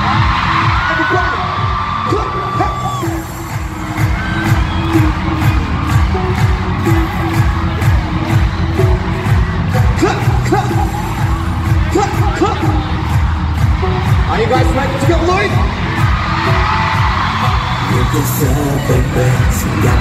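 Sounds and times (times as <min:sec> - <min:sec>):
fans screaming and cheering: 0:00.0 - 0:20.0
pop dance music over speakers: 0:00.0 - 0:20.0.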